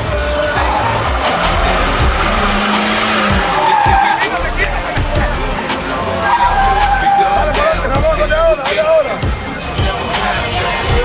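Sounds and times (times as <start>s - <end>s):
truck engine revving high: 0.0s - 8.9s
tyres screeching: 0.0s - 11.0s.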